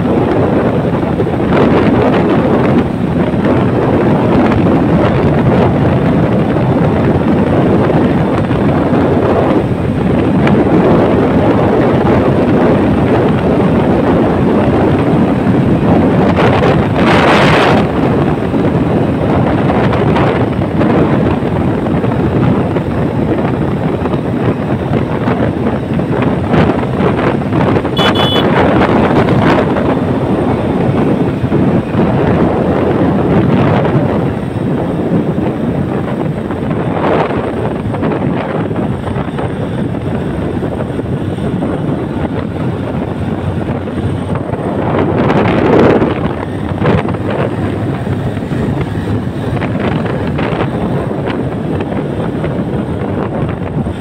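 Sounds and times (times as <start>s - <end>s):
motorcycle engine and road noise: 0.0s - 54.0s
wind buffeting microphone: 0.0s - 54.0s.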